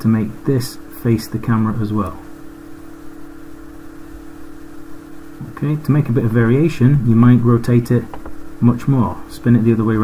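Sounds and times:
person speaking: 0:00.0 - 0:02.5, 0:05.3 - 0:10.0
steady low hum: 0:00.0 - 0:10.0.

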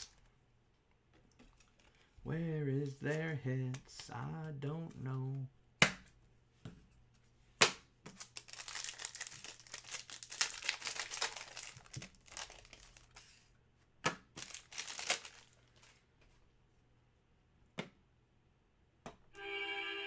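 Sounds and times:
card pack wrapper tearing: 0:08.1 - 0:13.3, 0:14.4 - 0:16.0
cards rustling: 0:08.1 - 0:13.5, 0:14.4 - 0:16.2.

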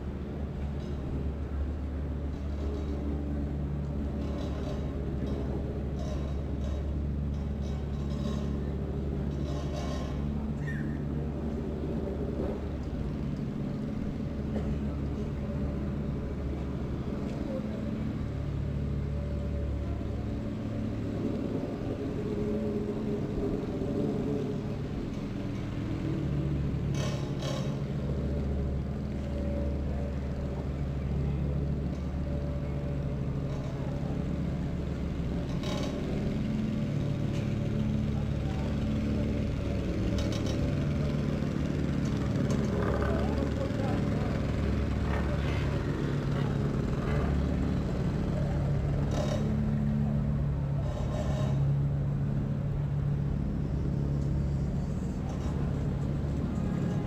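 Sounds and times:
traffic engine rumble: 0:00.0 - 0:57.0.

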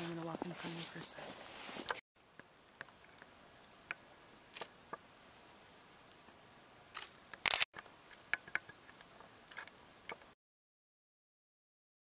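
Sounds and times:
small clicks: 0:06.9 - 0:10.3.

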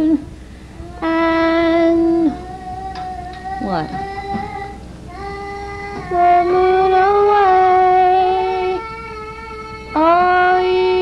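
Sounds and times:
woman singing held notes: 0:03.6 - 0:04.4.

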